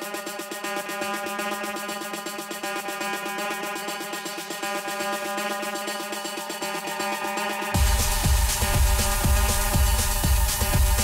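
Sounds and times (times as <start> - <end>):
tech house music: 0.0 - 11.0.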